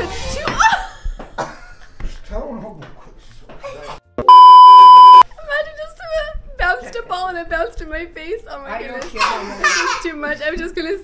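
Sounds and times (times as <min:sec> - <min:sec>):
high electronic censor bleep: 0:04.2 - 0:05.2.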